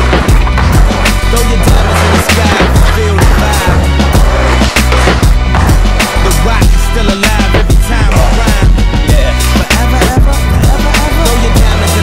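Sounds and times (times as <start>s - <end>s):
hip hop music with heavy bass: 0.0s - 12.0s
skateboard trucks grinding on wood: 0.0s - 12.0s
skateboard wheels rolling on concrete: 0.0s - 12.0s.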